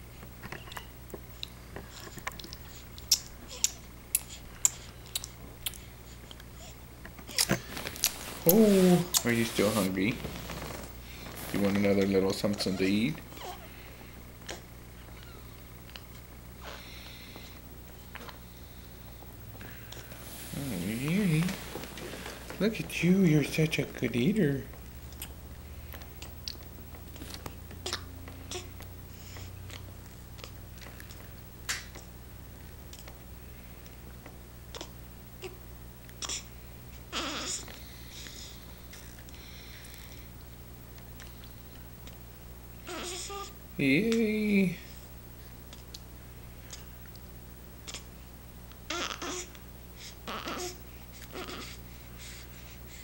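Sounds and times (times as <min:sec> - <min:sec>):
baby sucking bottle: 0:07.4 - 0:11.0.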